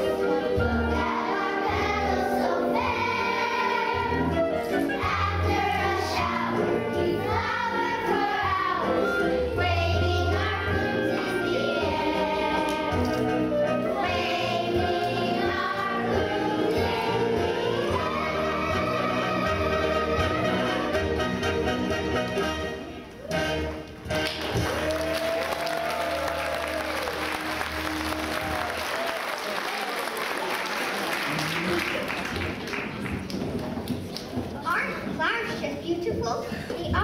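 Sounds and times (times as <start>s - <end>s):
children singing in unison: 0.0s - 13.2s, 13.9s - 20.8s
musical accompaniment: 0.0s - 29.1s
audience applause: 24.2s - 34.0s
audience voices: 24.6s - 34.6s.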